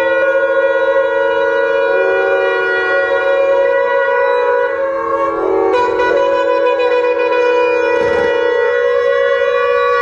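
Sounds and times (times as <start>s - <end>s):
conch shells blown together: 0.0s - 10.0s.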